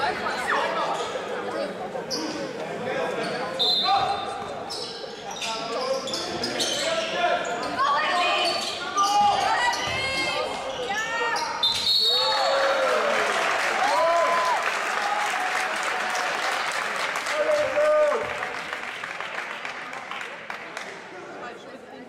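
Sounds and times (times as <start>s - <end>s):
sneakers squeaking: 2.0s - 2.6s, 3.2s - 12.2s.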